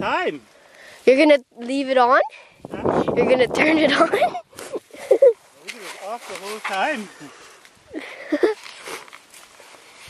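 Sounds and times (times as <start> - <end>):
rustling of leafy shrubs: 0.0 - 10.0
footsteps: 8.4 - 10.0.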